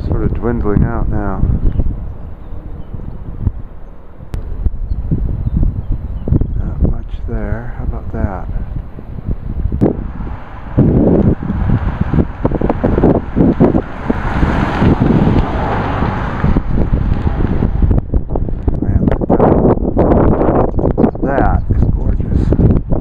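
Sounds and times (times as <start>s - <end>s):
wind buffeting microphone: 0.0s - 23.0s.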